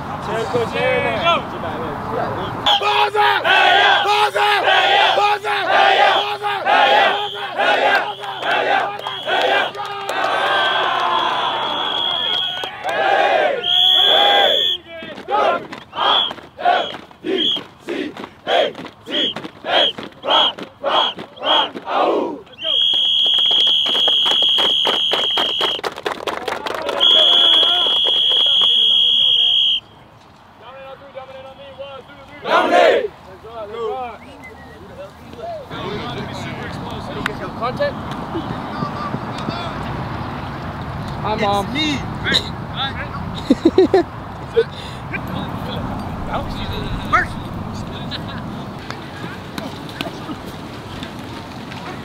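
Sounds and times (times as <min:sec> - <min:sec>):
team chanting and yelling: 0:02.5 - 0:22.8, 0:31.3 - 0:34.1
high-pitched whistle blasts: 0:07.0 - 0:09.8, 0:10.6 - 0:12.7, 0:13.6 - 0:14.8, 0:22.6 - 0:25.8, 0:27.0 - 0:29.9
fast rhythmic clapping: 0:22.9 - 0:28.8.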